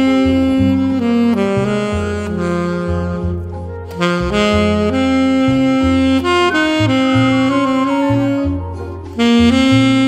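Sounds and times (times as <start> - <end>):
alto saxophone ballad melody: 0.0 - 10.0
backing accompaniment with bass: 0.0 - 10.0.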